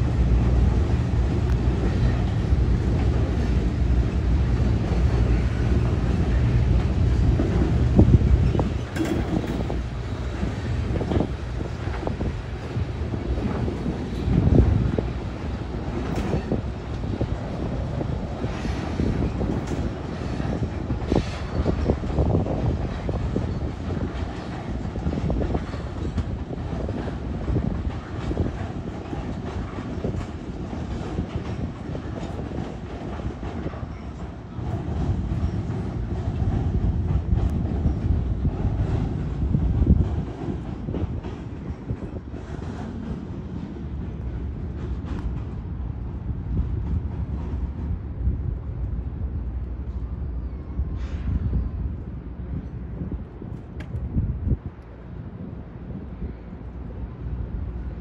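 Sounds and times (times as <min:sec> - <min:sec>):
train wheels rumbling on rail: 0:00.0 - 0:58.0.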